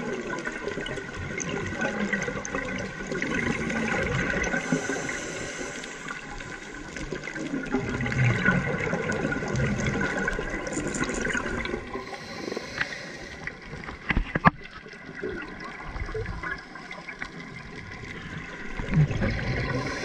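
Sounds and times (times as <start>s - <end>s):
regulator bubbles gurgling: 0.0s - 20.0s.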